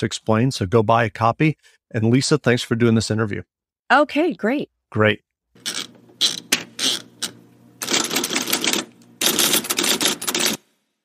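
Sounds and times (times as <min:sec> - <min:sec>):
manual typewriter typing: 0:05.6 - 0:10.6.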